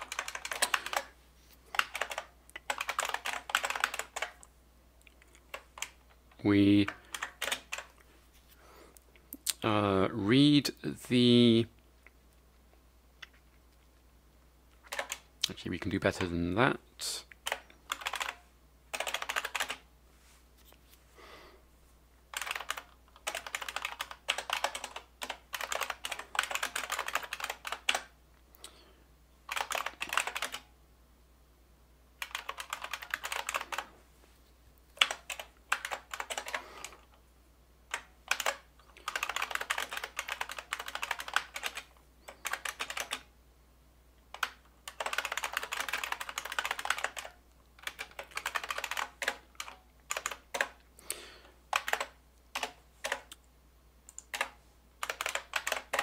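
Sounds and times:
typing on computer keyboard: 0.0s - 4.5s, 5.3s - 6.0s, 6.8s - 8.0s, 14.8s - 15.3s, 17.4s - 19.8s, 22.3s - 28.2s, 29.5s - 30.7s, 32.2s - 33.9s, 35.0s - 37.2s, 37.9s - 43.3s, 44.3s - 50.8s, 51.7s - 53.4s, 54.1s - 56.0s.

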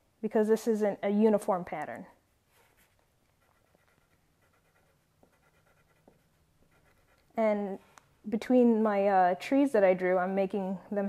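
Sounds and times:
pencil scratching on paper: 2.5s - 7.4s.

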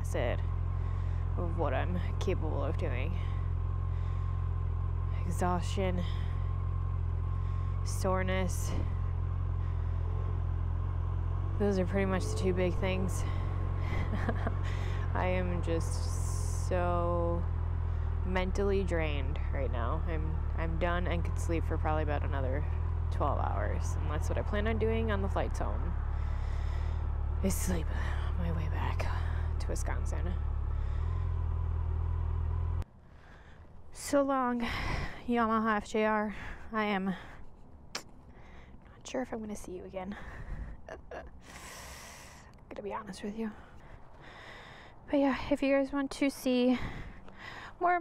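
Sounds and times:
motorcycle engine idling: 0.0s - 48.0s.

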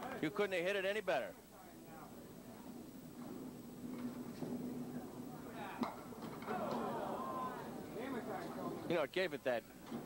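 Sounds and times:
bowling ball rolling: 2.6s - 8.8s.

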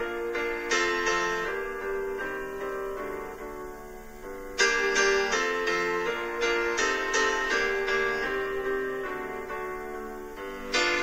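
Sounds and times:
soft keyboard chords: 0.0s - 11.0s.

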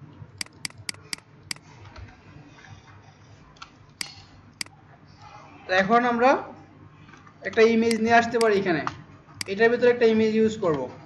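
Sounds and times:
computer mouse clicks: 0.4s - 1.6s, 7.9s - 8.6s.

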